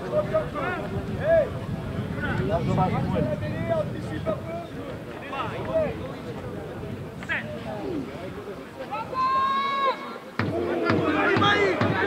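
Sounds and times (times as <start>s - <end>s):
voices shouting: 8.8s - 12.0s.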